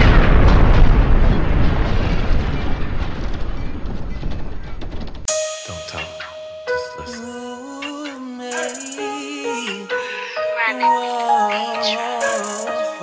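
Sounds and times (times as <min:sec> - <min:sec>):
explosion blast rumbling: 0:00.0 - 0:05.2
sustained music notes: 0:05.3 - 0:13.0.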